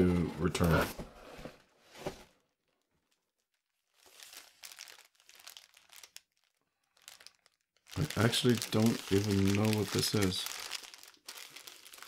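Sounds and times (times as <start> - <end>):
packaging rustling and crinkling: 3.0 - 12.0.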